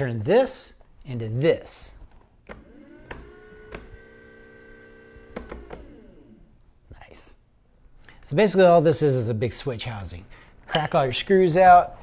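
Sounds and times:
electric motor whine: 2.5s - 6.5s.

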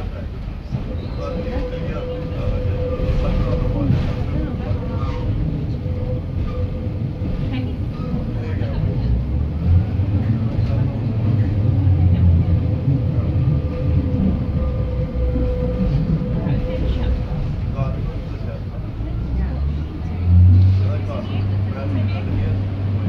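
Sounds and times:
diesel engine low rumble: 0.0s - 23.0s.

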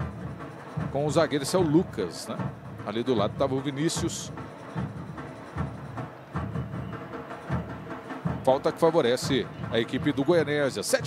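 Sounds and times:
drums beating: 0.0s - 11.0s
stadium crowd noise: 0.0s - 11.0s.

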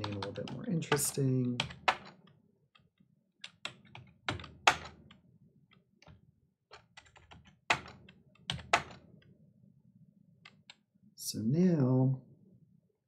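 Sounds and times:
keyboard typing clicks: 0.0s - 2.2s.

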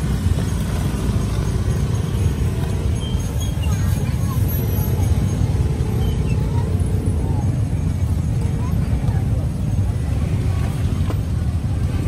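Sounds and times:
people talking: 0.0s - 12.0s
traffic rumble: 0.0s - 12.0s.

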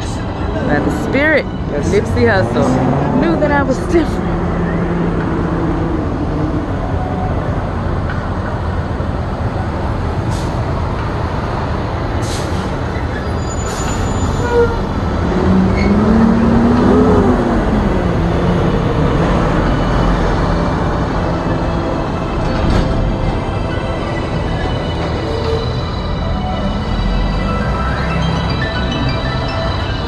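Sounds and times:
heavy traffic rumble: 0.0s - 30.0s
truck engine tone: 13.0s - 30.0s.

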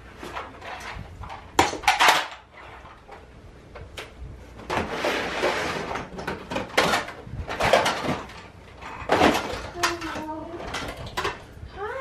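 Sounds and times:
plastic toys clacking: 0.4s - 3.2s, 6.0s - 11.5s.

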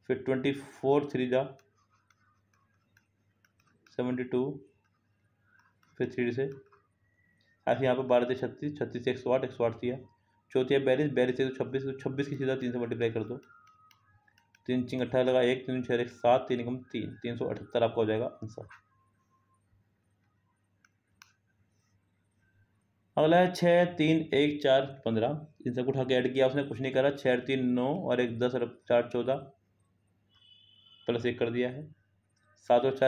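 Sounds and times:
man speaking: 0.0s - 1.6s, 4.0s - 4.6s, 6.0s - 6.6s, 7.7s - 13.5s, 14.7s - 18.8s, 23.2s - 29.5s, 31.1s - 31.9s, 32.6s - 33.0s
faint clicks: 1.5s - 4.0s, 13.2s - 14.8s, 20.2s - 21.5s.

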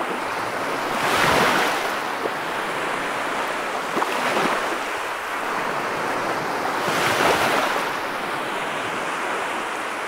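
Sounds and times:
ocean surf on sandy beach: 0.0s - 10.0s.

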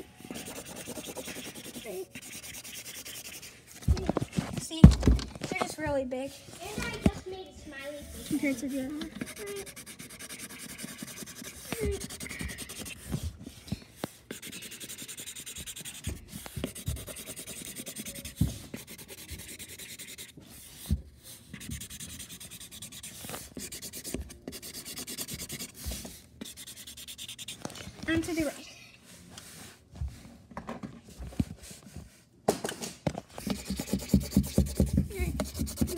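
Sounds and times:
marker scribbling on cardboard: 0.3s - 4.3s, 8.0s - 28.5s, 33.4s - 35.9s.

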